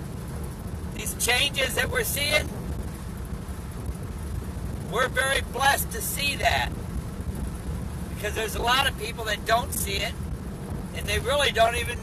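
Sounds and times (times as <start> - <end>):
road and engine rumble in cabin: 0.0 - 12.0.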